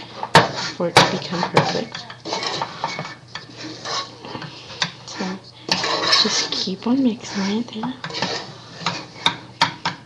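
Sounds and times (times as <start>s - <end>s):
wooden spoon scraping saucepan: 0.0s - 10.0s.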